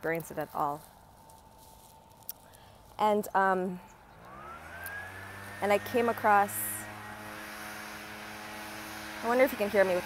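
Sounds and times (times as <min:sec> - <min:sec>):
distant leaf blower drone: 0:00.4 - 0:10.0.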